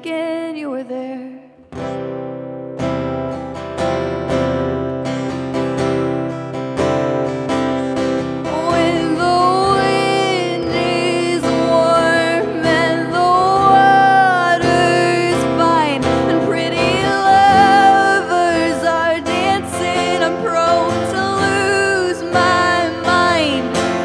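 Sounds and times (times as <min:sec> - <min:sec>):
acoustic guitar strumming: 0:01.6 - 0:24.0
woman singing long notes: 0:08.5 - 0:23.8.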